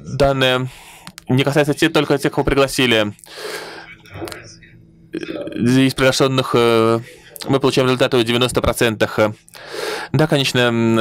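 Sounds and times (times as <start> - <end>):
person gasping: 3.2 - 3.9, 9.5 - 10.1
faint short breath sounds: 9.6 - 10.1.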